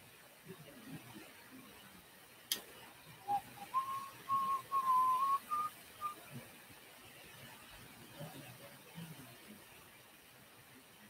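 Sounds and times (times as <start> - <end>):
person whistling a tune: 3.3 - 6.2.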